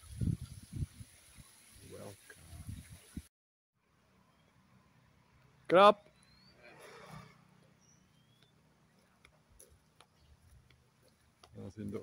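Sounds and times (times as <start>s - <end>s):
thin rising chirps: 6.0s - 8.7s.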